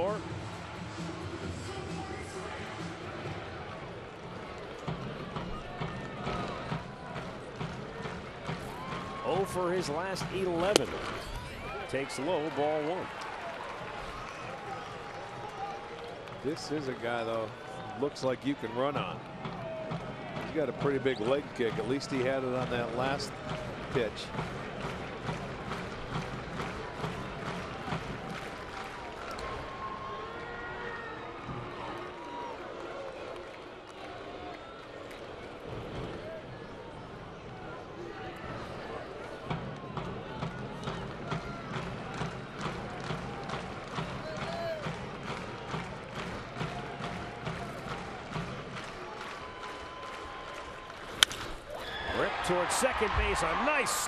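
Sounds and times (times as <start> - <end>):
people clapping: 3.6 - 30.5, 31.8 - 35.2, 39.2 - 54.0
crack of baseball bat: 51.1 - 51.6.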